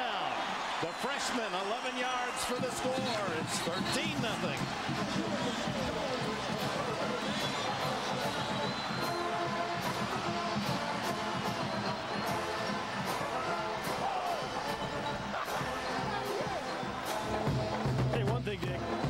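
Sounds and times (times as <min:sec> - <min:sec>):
stadium crowd noise: 0:00.0 - 0:19.0
marching band brass music: 0:02.3 - 0:19.0
bass drum beat: 0:02.6 - 0:19.0.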